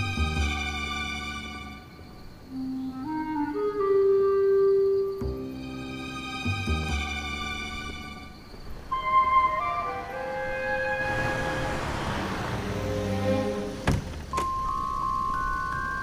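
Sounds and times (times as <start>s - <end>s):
hissing swell: 7.4s - 13.9s
music score with bell-like melody: 14.4s - 16.0s.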